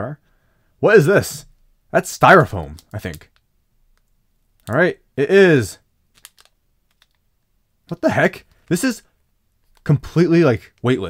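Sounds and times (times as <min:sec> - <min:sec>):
plastic bag crinkling: 0:06.1 - 0:07.2.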